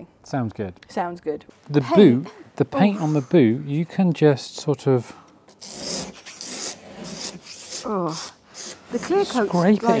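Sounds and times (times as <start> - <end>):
razor blade scraping car paint: 5.5 - 10.0.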